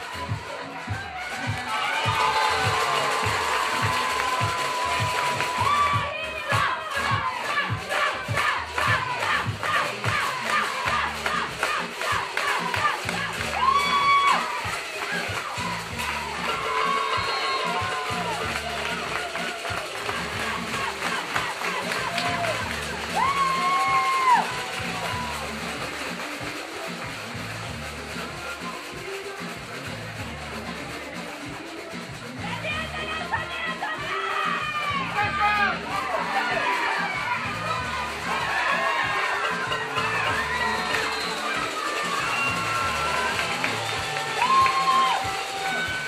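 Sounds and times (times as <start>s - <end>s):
crowd cheering and shouting: 0.0s - 31.5s, 32.2s - 46.0s
background music: 0.0s - 46.0s.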